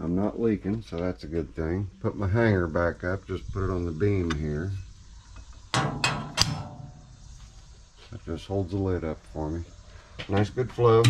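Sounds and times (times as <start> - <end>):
metal clanks: 5.6 - 7.3.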